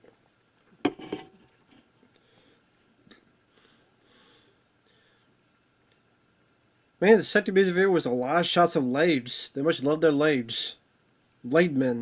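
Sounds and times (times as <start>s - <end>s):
small movement noises: 0.0s - 3.4s
soft breath-like hiss: 2.1s - 5.5s.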